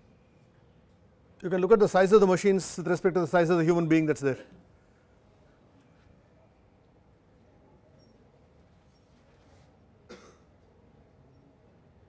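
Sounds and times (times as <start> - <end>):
short cough: 10.1 - 10.6.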